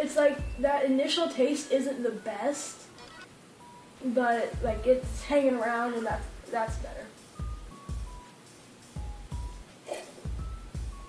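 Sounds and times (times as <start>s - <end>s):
music with deep thumping beat: 0.4s - 0.7s, 4.6s - 5.4s, 6.1s - 8.3s, 9.0s - 9.7s, 10.3s - 11.0s.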